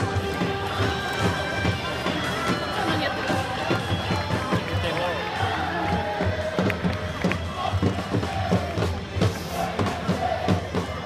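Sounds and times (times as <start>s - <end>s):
crowd noise: 0.0s - 11.0s
crowd singing: 0.0s - 11.0s
music: 0.0s - 11.0s.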